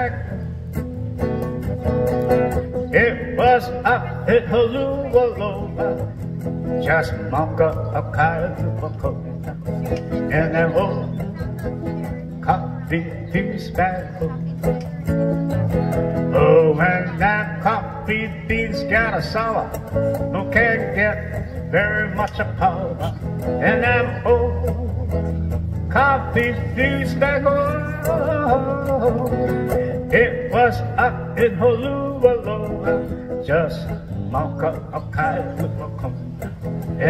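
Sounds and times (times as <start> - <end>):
acoustic guitar strumming: 0.0 - 37.0
person singing: 15.6 - 37.0.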